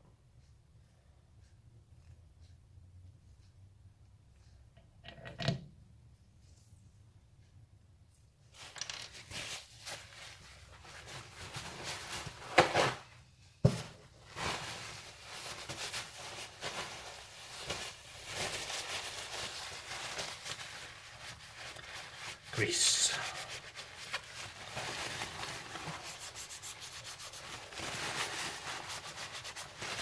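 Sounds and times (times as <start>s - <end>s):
cloth rag rustling: 8.5s - 30.0s.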